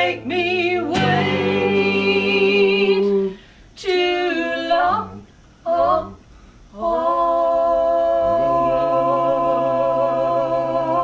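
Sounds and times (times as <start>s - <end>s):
vocal harmony singing: 0.0s - 11.0s.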